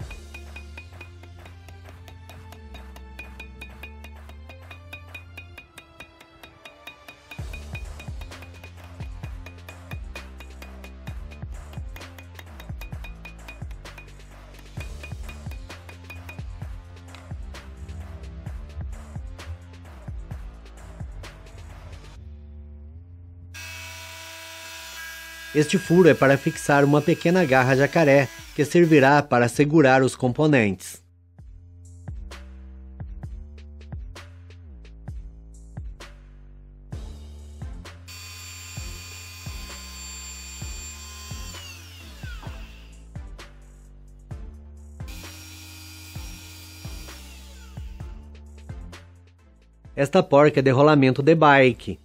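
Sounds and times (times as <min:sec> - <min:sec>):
background music with beat: 0:00.0 - 0:22.2, 0:31.4 - 0:38.1, 0:42.3 - 0:50.1
rotary tool motor whining: 0:23.6 - 0:29.0, 0:38.1 - 0:43.0, 0:45.1 - 0:48.1.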